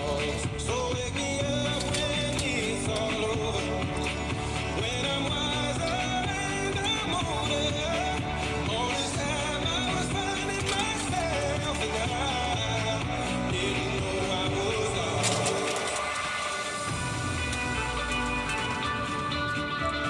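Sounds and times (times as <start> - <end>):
person singing: 0.0 - 20.0
pop song on radio: 0.0 - 20.0.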